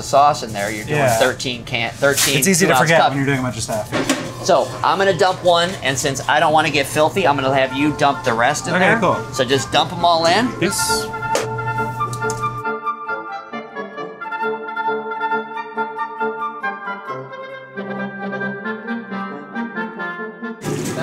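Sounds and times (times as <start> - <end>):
kitchen clanks: 3.9 - 4.5, 20.6 - 21.0
instrumental brass music: 7.4 - 21.0.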